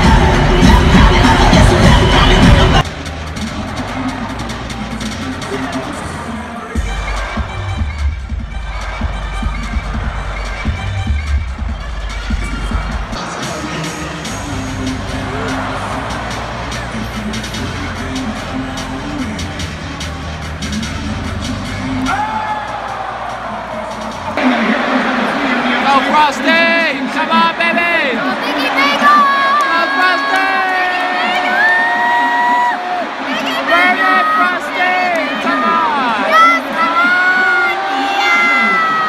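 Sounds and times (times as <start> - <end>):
heavy bass line: 0.0 - 5.9
crowd cheering: 0.0 - 39.0
music over loudspeakers: 0.0 - 39.0.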